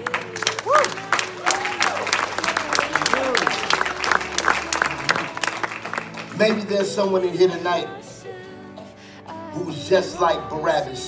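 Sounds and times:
crowd applauding: 0.0s - 7.5s
voices calling out: 0.0s - 11.0s.

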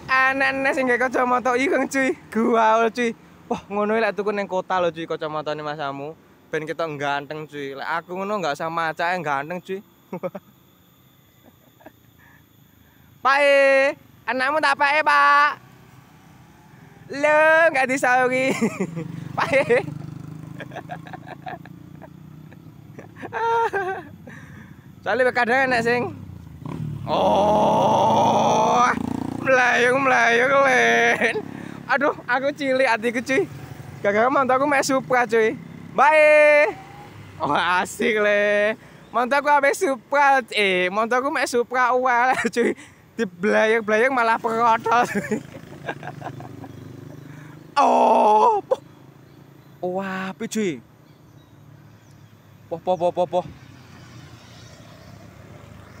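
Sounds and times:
motorcycle engines passing: 0.0s - 12.7s, 13.4s - 56.0s
faint whine: 4.6s - 18.5s, 20.7s - 27.1s
larger vehicle approaching: 14.9s - 38.7s, 43.9s - 56.0s
man's long loud shout: 27.1s - 29.0s, 47.8s - 48.8s.

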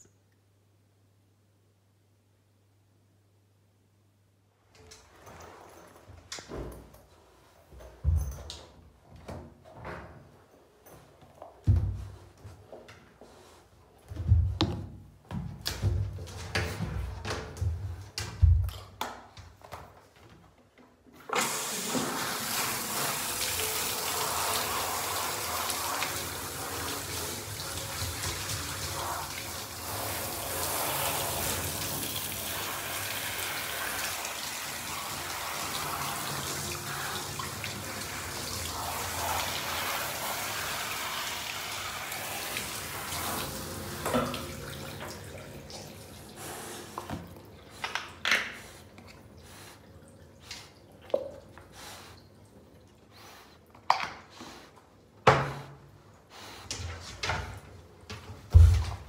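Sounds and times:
shower spraying water: 21.3s - 53.5s.

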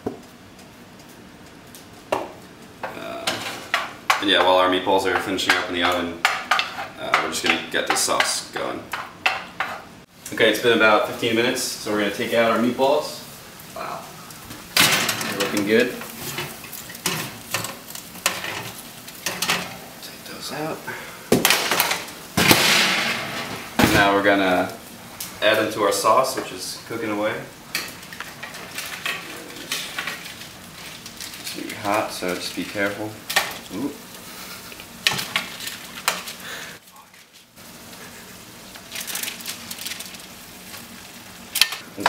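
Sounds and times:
low steady background hiss: 0.0s - 42.0s.

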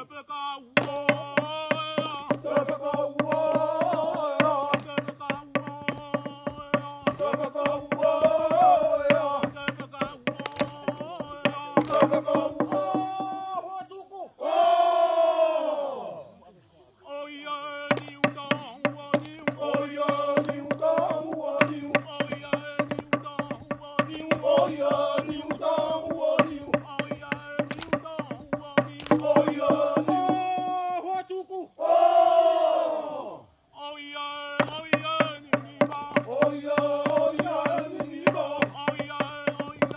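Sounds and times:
men chanting: 0.0s - 16.4s, 17.0s - 39.9s
men's chorus singing in unison: 0.8s - 13.6s, 17.1s - 30.9s, 31.8s - 39.9s
loud held group cry: 2.4s - 4.6s, 7.2s - 9.5s, 14.4s - 16.3s, 19.6s - 21.9s, 24.4s - 26.7s, 29.1s - 30.4s, 31.8s - 33.4s, 36.3s - 38.6s.

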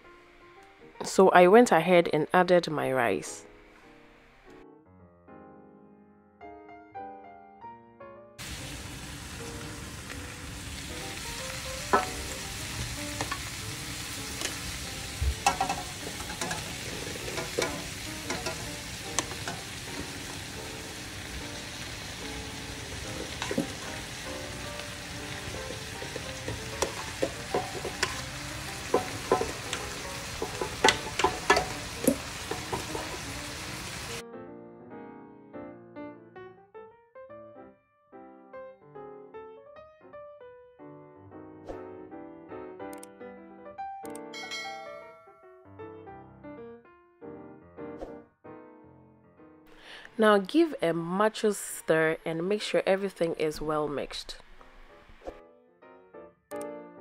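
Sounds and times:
soft piano music: 0.0s - 51.3s, 54.4s - 57.0s
food sizzling in a metal pan: 8.4s - 34.2s
spatula knocking and scraping pan: 11.8s - 13.6s, 14.2s - 20.6s, 22.9s - 24.6s, 25.3s - 34.2s.

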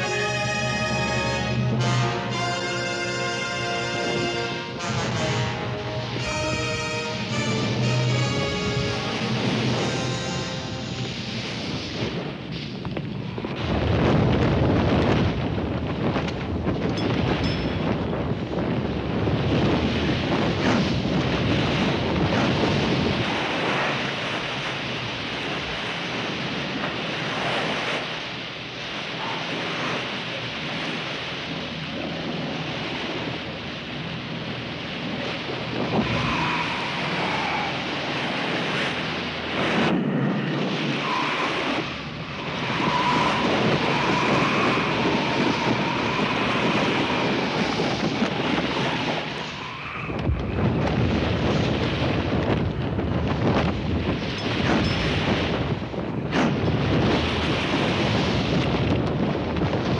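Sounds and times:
strong wind: 0.0s - 59.9s.

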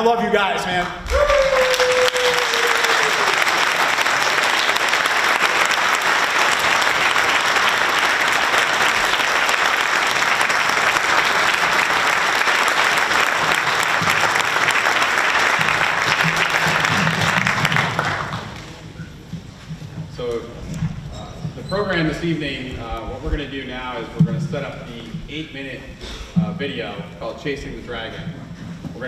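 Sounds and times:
audience applauding: 0.7s - 19.0s.

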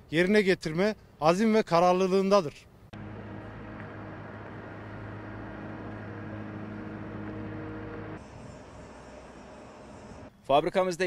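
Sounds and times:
low machine hum with tones: 2.9s - 10.4s.

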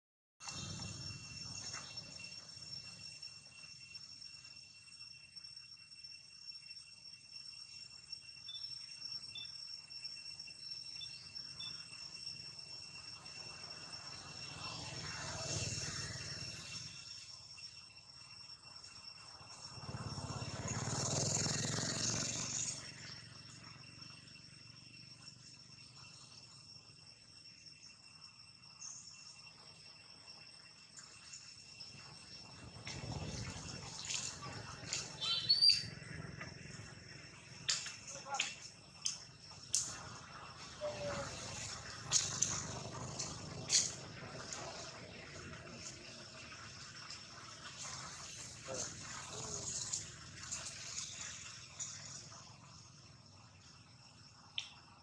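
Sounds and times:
high-pitched insect drone: 0.4s - 55.0s.

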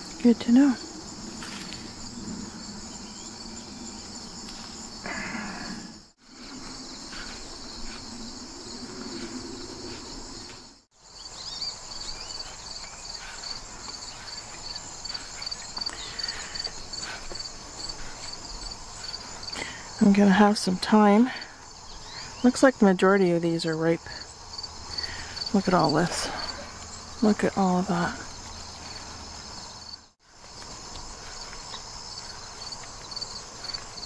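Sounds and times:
crickets trilling: 0.0s - 34.0s.

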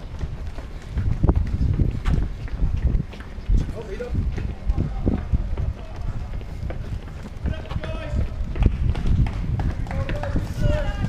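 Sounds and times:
people running on pavement: 0.0s - 11.0s.

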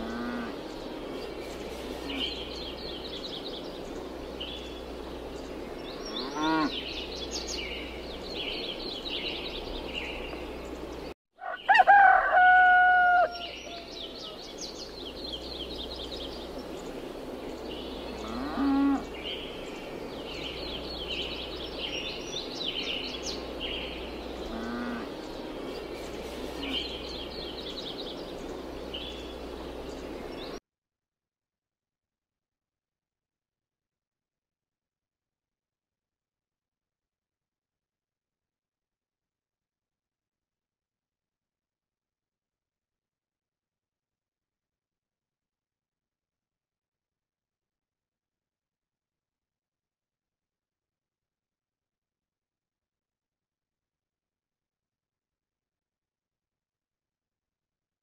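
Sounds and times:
farm animal calling: 0.0s - 0.6s, 6.0s - 6.8s, 18.2s - 19.2s, 24.4s - 25.2s
small birds chirping: 0.0s - 11.8s, 13.2s - 30.6s.

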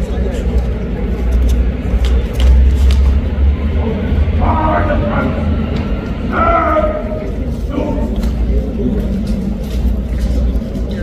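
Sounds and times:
low rumble of passing traffic: 0.0s - 10.0s
indistinct background voices: 0.0s - 11.0s.

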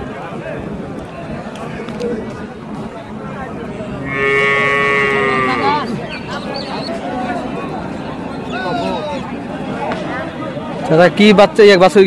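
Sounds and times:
calf mooing: 4.1s - 5.8s.

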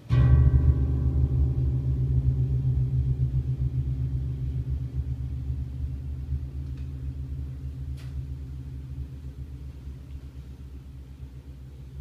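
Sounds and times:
low electric piano notes: 0.0s - 12.0s.

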